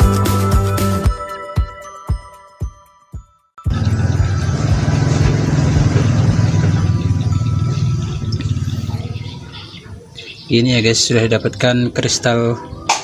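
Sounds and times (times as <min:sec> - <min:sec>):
low engine rumble: 0:03.7 - 0:10.6.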